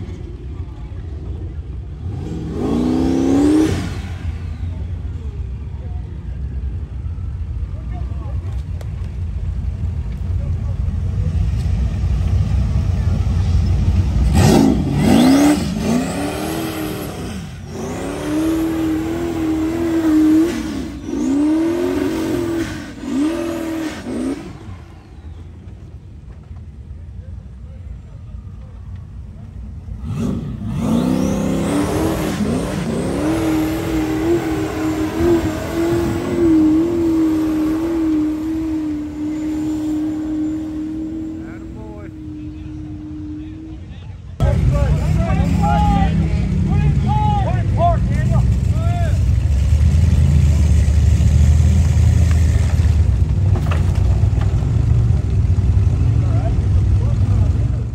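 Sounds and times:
buggy engine revving hard: 0:02.0 - 0:05.0, 0:14.1 - 0:24.9, 0:29.9 - 0:43.7, 0:44.4 - 0:57.9
people's voices: 0:04.4 - 0:31.8, 0:32.4 - 0:49.4.

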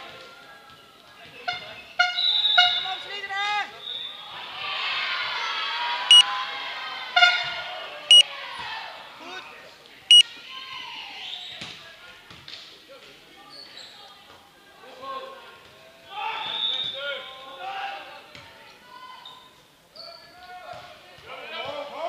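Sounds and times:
players shouting and cheering: 0:02.9 - 0:09.5.

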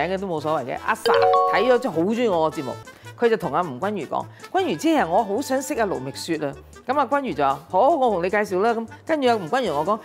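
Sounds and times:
doorbell-like chime: 0:01.1 - 0:02.1.

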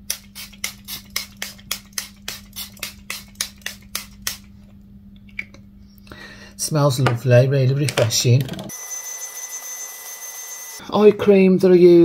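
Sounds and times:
pump spray bottle spritzing: 0:00.0 - 0:04.5.

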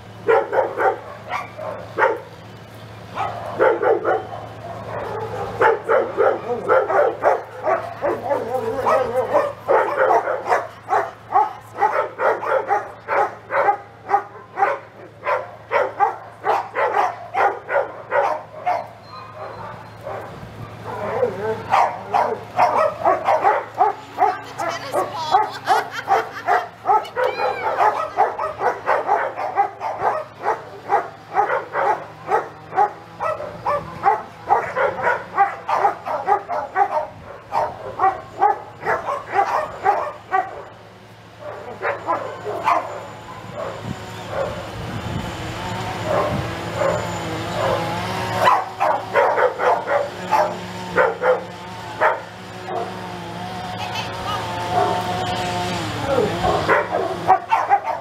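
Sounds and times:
dogs barking: 0:00.1 - 0:45.0, 0:45.6 - 0:58.0.

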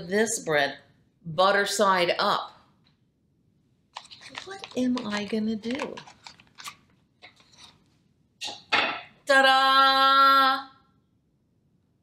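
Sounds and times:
plastic package crinkling: 0:03.9 - 0:07.8.

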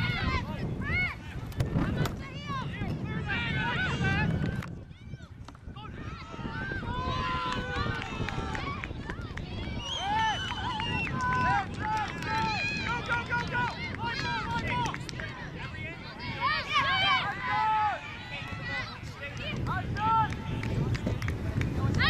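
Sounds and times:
people shouting: 0:16.1 - 0:20.3.

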